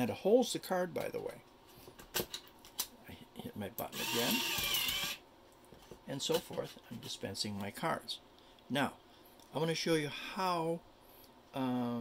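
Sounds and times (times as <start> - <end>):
card dispenser motor whining: 4.0 - 5.2.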